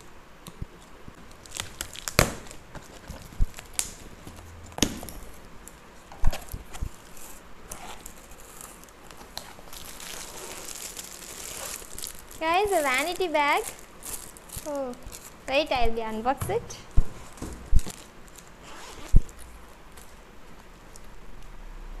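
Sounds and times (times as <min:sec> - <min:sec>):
plastic wrapping crinkling: 0:00.8 - 0:21.2.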